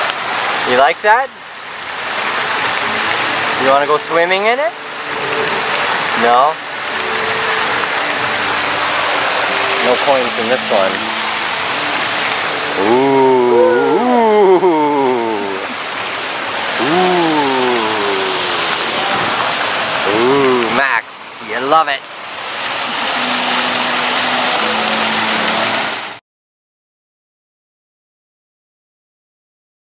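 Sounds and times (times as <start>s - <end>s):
fountain water splashing: 0.0s - 26.2s
voices: 12.7s - 15.8s, 16.8s - 21.9s.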